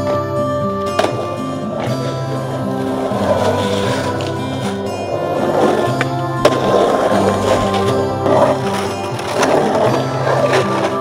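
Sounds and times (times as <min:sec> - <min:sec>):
background music: 0:00.0 - 0:11.0
skateboard clack: 0:00.0 - 0:11.0
skateboard wheels rolling on concrete: 0:00.0 - 0:11.0.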